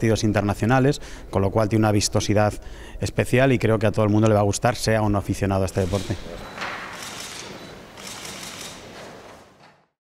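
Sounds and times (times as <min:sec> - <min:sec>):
camera shutters clicking: 0:05.8 - 0:09.4.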